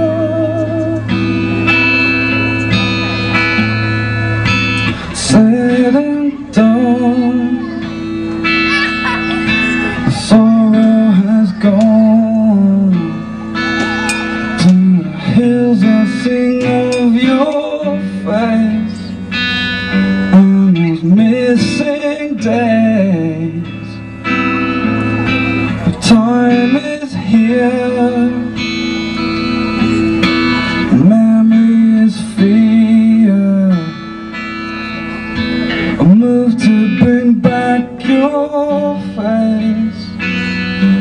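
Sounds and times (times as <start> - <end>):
acoustic guitar melody: 0.0 - 41.0.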